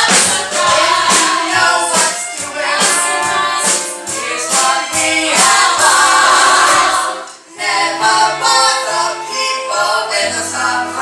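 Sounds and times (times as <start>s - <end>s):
cast singing together: 0.0s - 11.0s
musical accompaniment: 0.0s - 11.0s.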